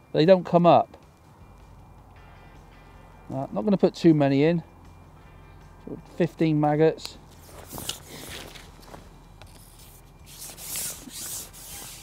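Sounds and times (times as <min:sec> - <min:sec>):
fishing pole rubbing hiss: 0:09.5 - 0:12.0.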